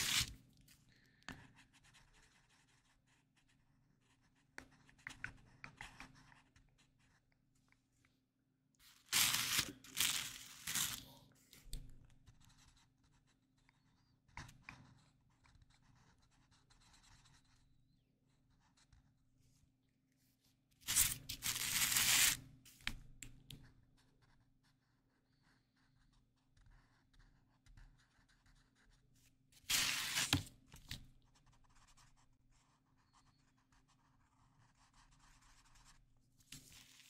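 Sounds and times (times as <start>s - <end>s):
paper rustling: 0.0s - 0.3s, 8.8s - 11.1s, 29.6s - 31.0s, 36.5s - 37.0s
marker scratching on paper: 0.0s - 0.4s, 1.3s - 7.3s, 8.8s - 11.2s, 12.2s - 19.2s, 20.8s - 23.0s, 24.0s - 37.0s.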